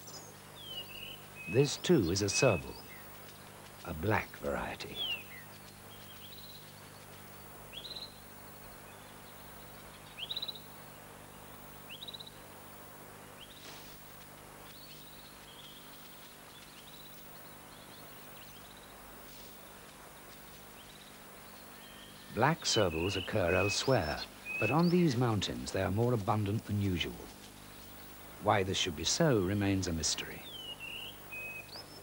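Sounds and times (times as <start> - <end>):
bird chirping: 0.0 - 12.4, 14.7 - 19.0, 20.0 - 32.0
faint outdoor hiss: 0.0 - 32.0.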